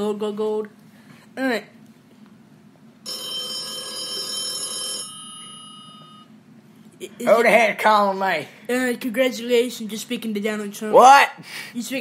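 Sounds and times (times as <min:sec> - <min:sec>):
telephone ringing: 0:03.0 - 0:06.4.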